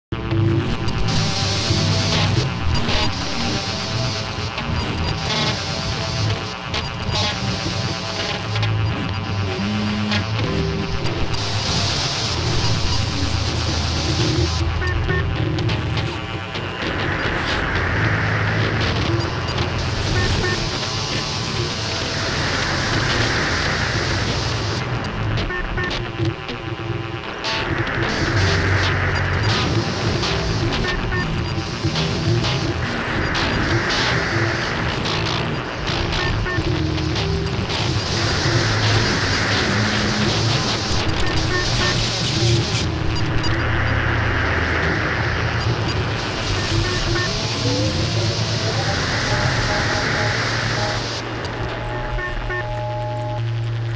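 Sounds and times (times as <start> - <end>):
experimental noise music: 0.0 - 53.9
dense wash of noise: 15.8 - 25.0, 37.6 - 53.9.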